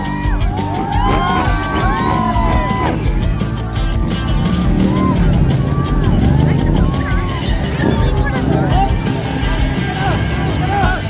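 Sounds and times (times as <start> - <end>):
loud crowd chatter: 0.0 - 11.0
motorcycle engine revving: 0.2 - 11.0.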